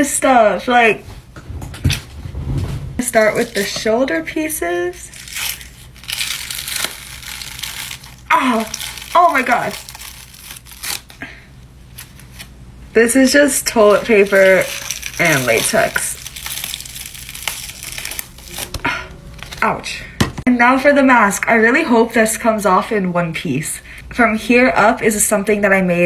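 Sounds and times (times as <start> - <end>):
prosthetic peeling and tearing: 5.1 - 11.2, 13.7 - 19.6.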